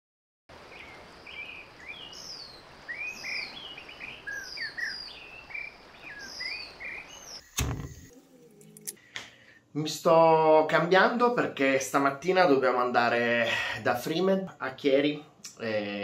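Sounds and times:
birds chirping: 0.5s - 9.0s
outdoor hiss: 0.5s - 12.3s
loud thump: 7.6s - 8.1s.

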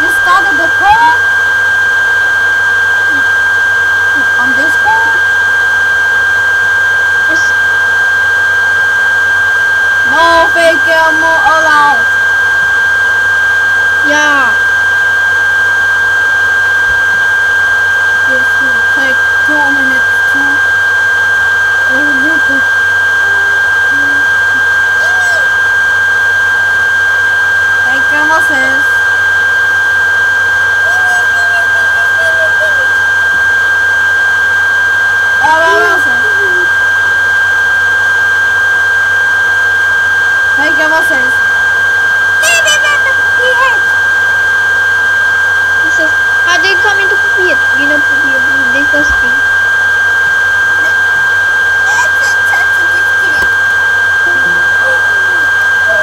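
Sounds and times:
voice fragments: 0.0s - 1.2s, 4.1s - 5.3s, 7.3s - 7.6s, 10.0s - 12.2s, 18.2s - 20.6s, 21.8s - 25.7s, 27.8s - 29.0s, 30.8s - 33.5s, 35.4s - 36.7s, 40.6s - 41.4s, 42.4s - 44.1s, 45.8s - 49.5s, 50.7s - 56.0s
high-pitched electronic tone: 0.0s - 6.4s, 7.2s - 8.5s, 9.3s - 34.4s, 35.0s - 38.4s, 39.4s - 56.0s.

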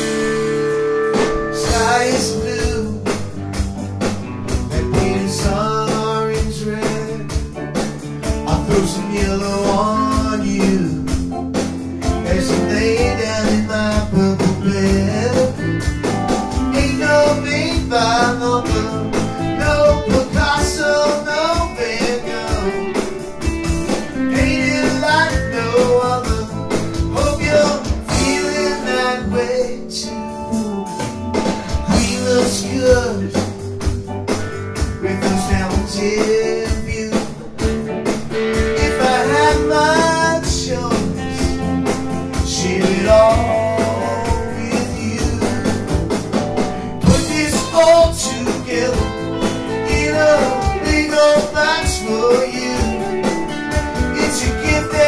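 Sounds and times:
live rock band playing: 0.0s - 55.0s
sliding lead melody: 0.0s - 55.0s.

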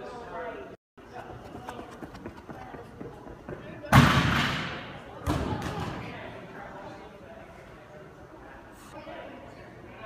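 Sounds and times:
running footsteps on runway: 1.0s - 4.1s.

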